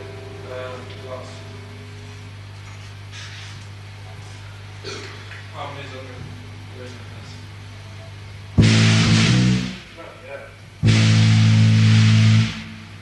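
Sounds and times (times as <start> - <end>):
distorted guitar and bass chords: 0.0 - 2.5, 8.6 - 10.0, 10.8 - 13.0
steady low hum: 0.0 - 13.0.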